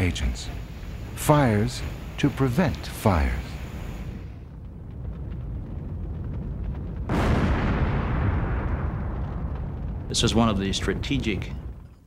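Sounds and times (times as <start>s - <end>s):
fire burning with low rumble: 0.0s - 12.0s
loud burst of fire: 0.0s - 12.0s.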